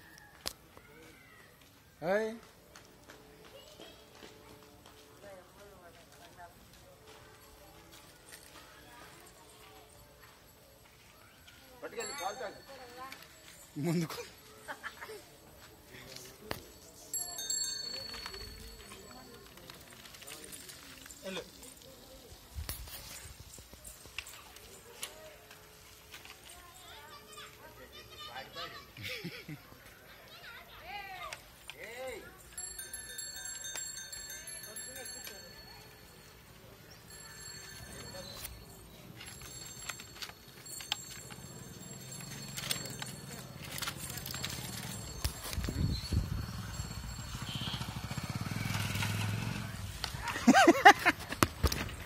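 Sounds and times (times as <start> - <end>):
faint indistinct voices: 0.0 - 50.2
motorcycle engine passing: 45.9 - 51.0.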